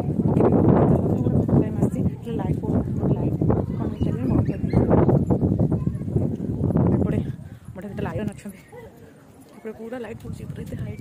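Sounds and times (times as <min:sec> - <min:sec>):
rough low rumbling on microphone: 0:00.0 - 0:08.3
indistinct talking: 0:00.0 - 0:11.0.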